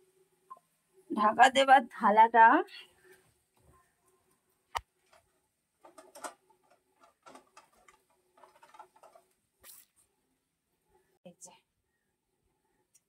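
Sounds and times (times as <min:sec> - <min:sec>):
household things clattering: 0:05.0 - 0:09.4.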